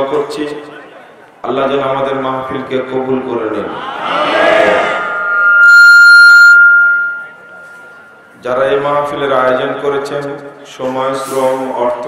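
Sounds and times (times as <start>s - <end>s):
loudspeaker feedback whistle: 3.4s - 8.4s.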